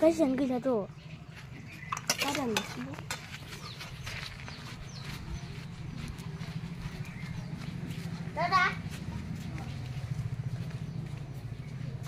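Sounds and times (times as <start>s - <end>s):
footsteps on yard ground: 0.0s - 12.0s
steady low rumble: 3.1s - 12.0s.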